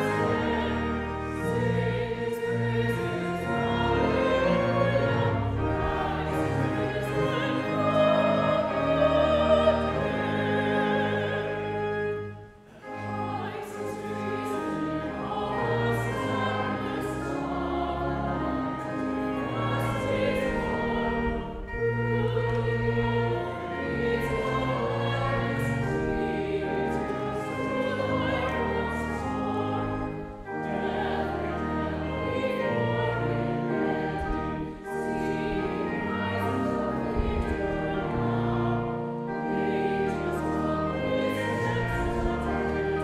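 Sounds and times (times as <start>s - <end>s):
congregation singing a hymn: 0.0s - 43.0s
organ chords: 0.0s - 43.0s.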